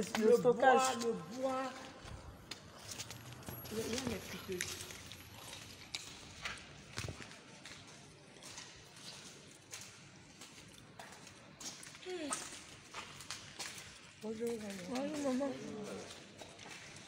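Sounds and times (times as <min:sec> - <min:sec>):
footsteps over debris: 0:00.0 - 0:17.0.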